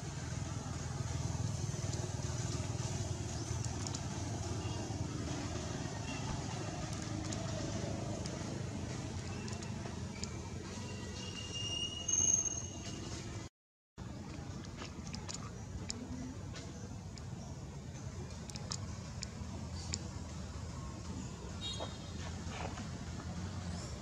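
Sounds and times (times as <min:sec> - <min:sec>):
low outdoor rumble: 0:00.0 - 0:11.3, 0:14.0 - 0:21.6.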